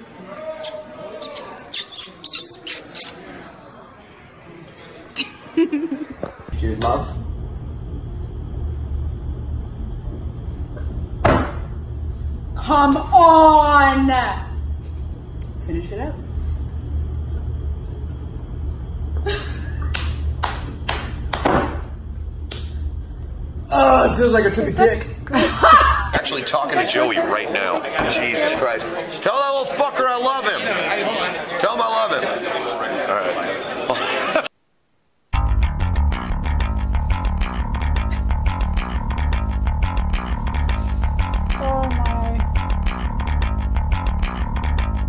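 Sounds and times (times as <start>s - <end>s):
low steady hum: 5.2s - 26.2s, 36.4s - 43.4s
hands clapping: 19.9s - 21.5s
sharp hissy sounds: 40.5s - 41.2s.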